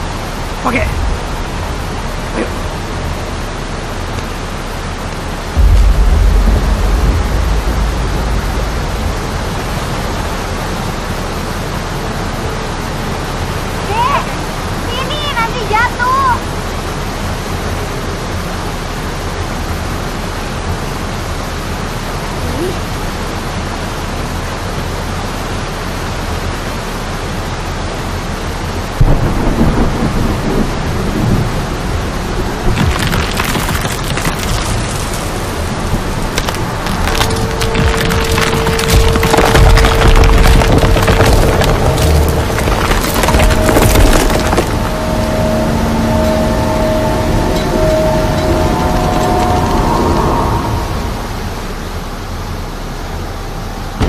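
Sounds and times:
heavy rain: 0.0s - 54.0s
rushing floodwater: 0.0s - 54.0s
deep rumble: 0.8s - 12.6s, 29.0s - 52.8s
cracking and splintering: 32.6s - 45.5s.

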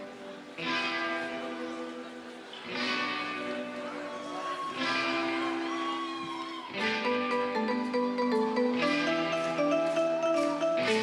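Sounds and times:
electric guitar notes ringing: 0.0s - 11.0s.

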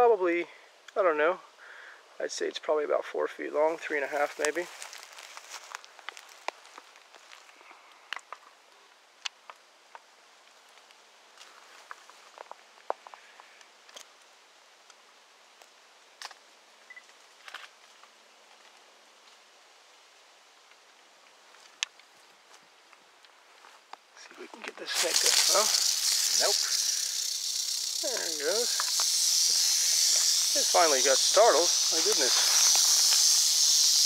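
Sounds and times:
dry leaves crunching underfoot: 3.7s - 7.6s, 24.5s - 34.0s.

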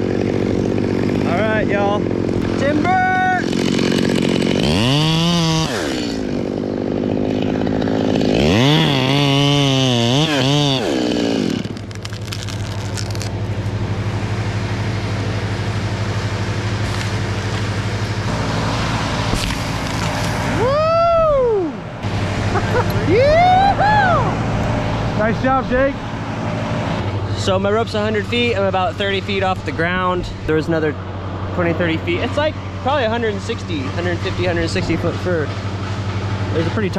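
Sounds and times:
chainsaw idling and revving: 0.0s - 20.6s, 24.5s - 30.1s, 30.7s - 36.9s.

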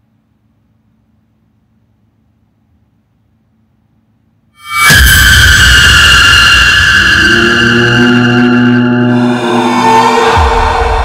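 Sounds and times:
horror music stinger: 4.6s - 11.0s
low drone: 4.6s - 11.0s.

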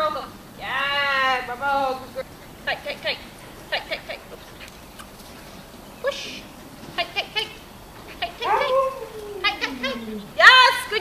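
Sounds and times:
dog yipping excitedly: 8.4s - 10.7s.

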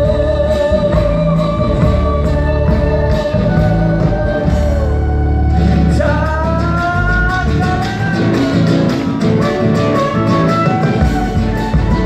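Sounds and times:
live band music: 0.0s - 12.0s
long held melody line: 0.0s - 12.0s.

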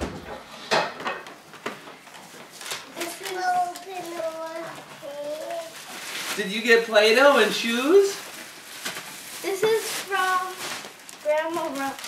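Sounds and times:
wrapping paper crinkling: 1.5s - 12.0s
child babbling: 3.0s - 5.8s.

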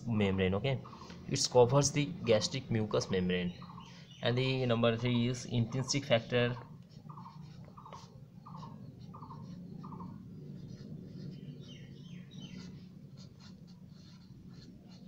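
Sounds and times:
marker scratching on paper: 5.7s - 15.0s.

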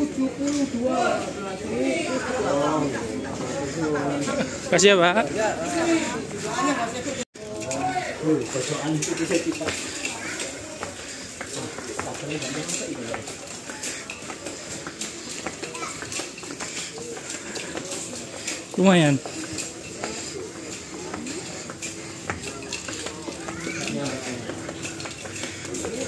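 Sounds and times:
passengers chattering: 0.0s - 26.0s.

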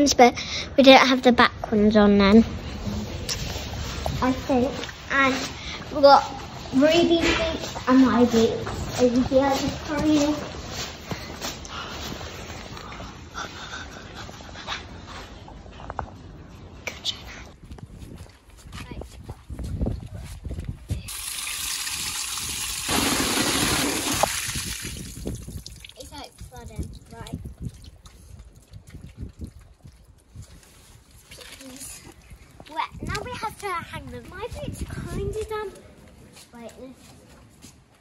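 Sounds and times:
water pouring: 21.1s - 29.9s.

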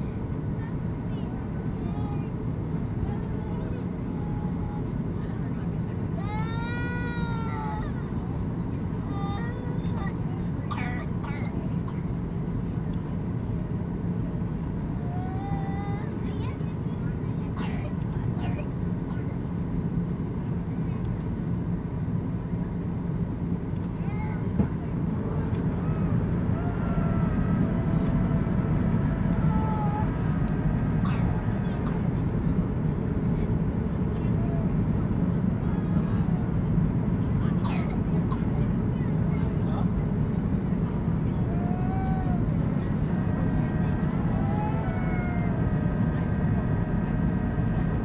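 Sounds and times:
jet engines droning: 0.0s - 48.0s.

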